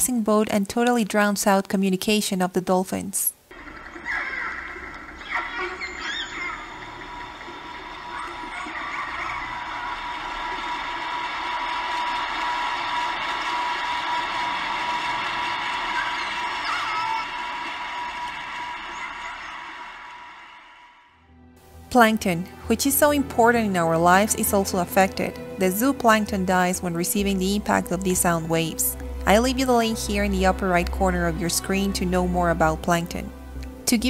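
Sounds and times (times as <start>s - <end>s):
underwater boat engine and propeller: 3.5s - 10.9s
faint dolphin whistles: 3.8s - 10.9s, 15.8s - 20.1s.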